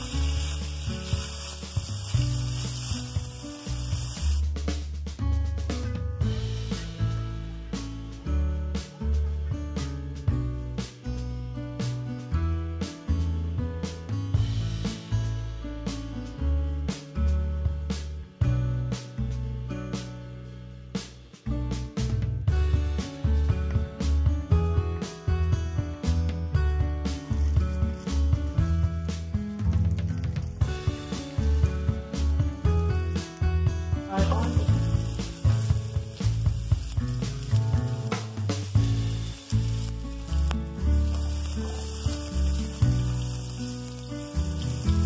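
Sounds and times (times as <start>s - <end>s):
sausage sizzling in oil: 0.0s - 5.1s, 6.3s - 10.1s, 27.0s - 45.0s
background music with bass: 0.0s - 45.0s.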